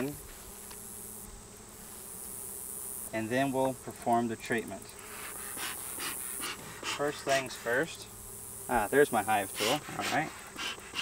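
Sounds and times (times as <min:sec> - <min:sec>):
bellows puffing air: 0:05.0 - 0:07.8, 0:09.2 - 0:11.0.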